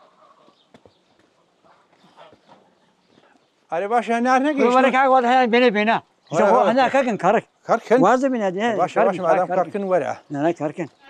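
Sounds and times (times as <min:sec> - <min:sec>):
faint footsteps on stone: 0:00.4 - 0:03.7.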